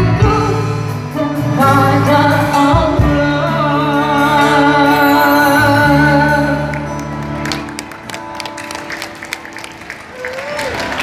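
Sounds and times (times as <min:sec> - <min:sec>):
audience clapping: 0:06.7 - 0:11.0.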